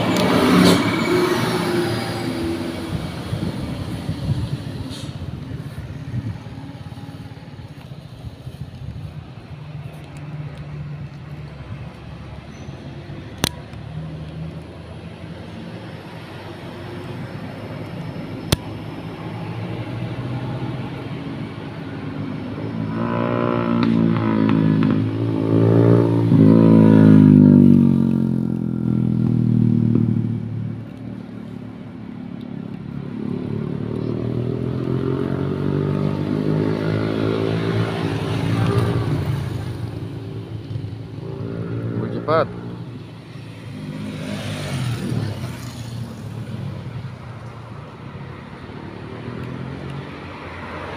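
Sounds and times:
vehicles passing on road: 0.0 - 50.9.

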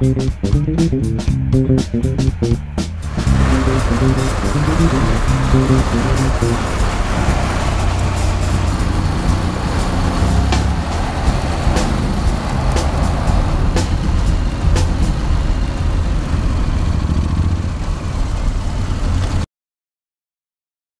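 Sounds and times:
background music: 0.0 - 15.3
scooter engine running: 3.1 - 19.2.

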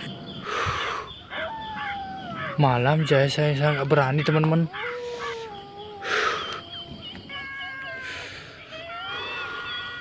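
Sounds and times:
dogs howling in distance: 0.0 - 10.0.

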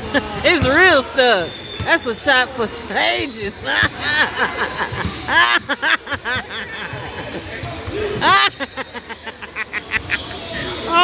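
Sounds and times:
voices echoing in gym: 0.0 - 11.0.

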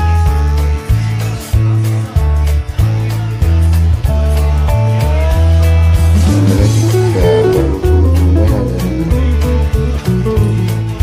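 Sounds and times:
guitar: 0.0 - 11.0
bass line: 4.1 - 11.0.

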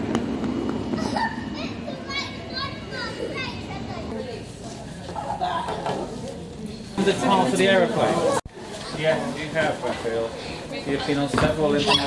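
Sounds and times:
murmur of busy hall: 0.0 - 12.0
children calling out: 0.9 - 4.2.

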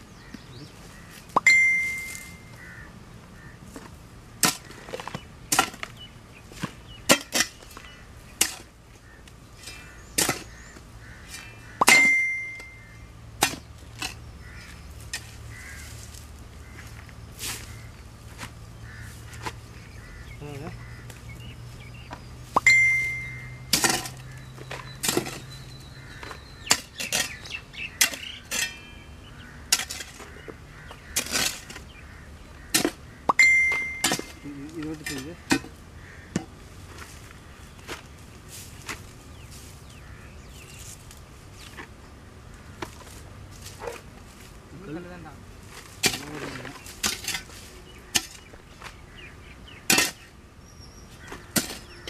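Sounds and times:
faint crow caws: 0.2 - 1.4, 2.1 - 3.9, 7.8 - 13.2, 14.0 - 21.4, 23.4 - 33.4, 34.2 - 38.1, 39.6 - 41.2, 42.4 - 44.0, 51.1 - 52.0
digging tool striking stony ground: 3.8 - 6.0, 6.6 - 8.7, 9.6 - 10.6, 11.2 - 12.8, 13.4 - 14.2, 22.5 - 25.6, 26.2 - 29.0, 29.7 - 30.3, 31.1 - 32.0, 32.7 - 37.1, 45.9 - 48.6, 49.8 - 50.3, 51.3 - 52.0.

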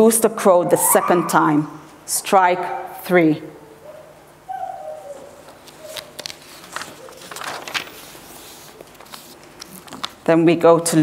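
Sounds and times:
paper rustle: 5.4 - 10.3.

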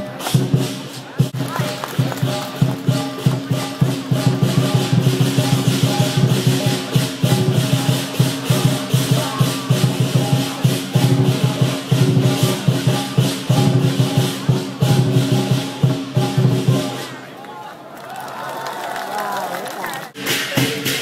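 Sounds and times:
big drum beating: 0.0 - 17.2, 20.2 - 21.0
cymbals clashing: 0.0 - 17.2, 20.2 - 21.0
gong beating: 2.3 - 16.9.

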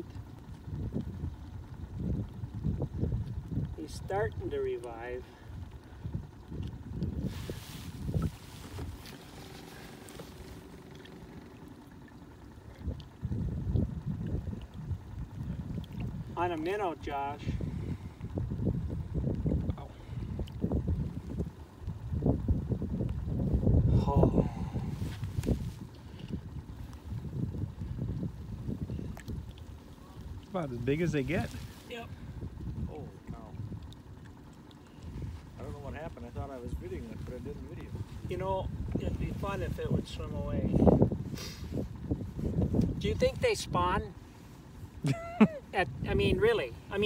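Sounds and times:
water splashing against boat: 0.0 - 47.0
wind buffeting microphone: 0.0 - 47.0.

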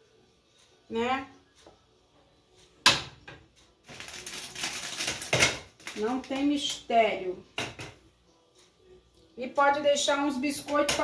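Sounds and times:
crinkly rustling: 3.9 - 6.5.

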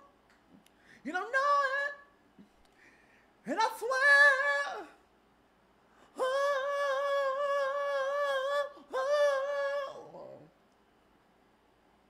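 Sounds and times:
man singing without words: 0.9 - 2.2, 3.4 - 5.0, 6.0 - 10.6.

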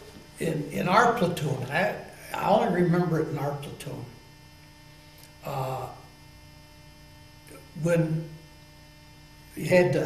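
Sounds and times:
electrical mains hum: 0.0 - 10.0
man speaking: 0.4 - 4.2, 5.4 - 6.1, 7.5 - 8.4, 9.6 - 10.0.

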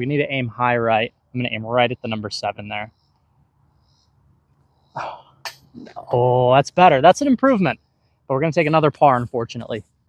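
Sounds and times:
man speaking: 0.0 - 2.9, 5.0 - 5.2, 5.8 - 9.8
man's breathy exclamation: 5.0 - 5.2.

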